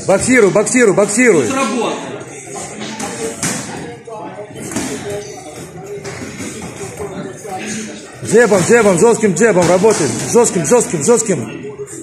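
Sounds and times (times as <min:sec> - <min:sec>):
faint background voices: 0:00.0 - 0:12.0.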